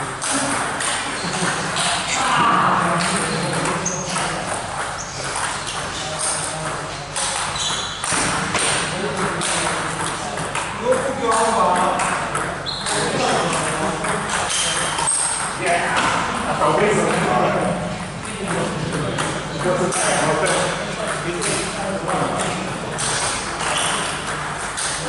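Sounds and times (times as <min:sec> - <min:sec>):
table tennis ball clicks: 0:00.2 - 0:02.0, 0:03.0 - 0:16.2
people talking: 0:00.2 - 0:25.0.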